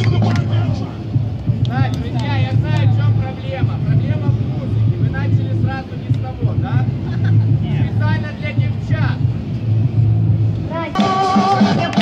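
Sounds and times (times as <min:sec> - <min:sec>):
steady low rumble: 0:00.0 - 0:11.0
crowd talking and calling out: 0:00.0 - 0:12.0.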